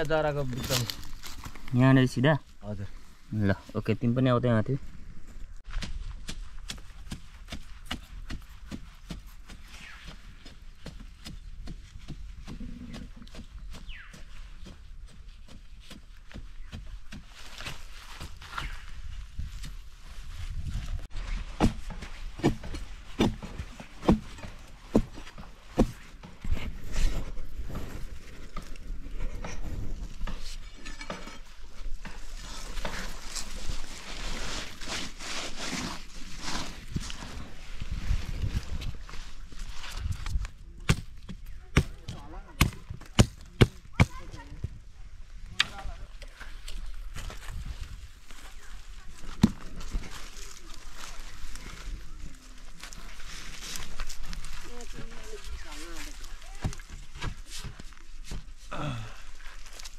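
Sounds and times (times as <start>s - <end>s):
scraping of loose soil: 0.0s - 44.7s
digging tool striking earth: 5.6s - 18.8s, 21.2s - 33.5s, 40.0s - 44.4s.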